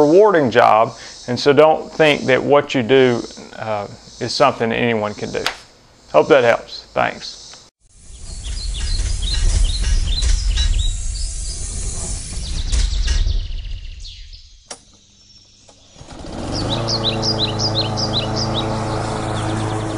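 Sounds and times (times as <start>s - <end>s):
birds chirping: 0.0s - 19.9s
low rumble: 8.0s - 14.7s
engine starting and running: 8.0s - 15.0s, 15.6s - 19.9s.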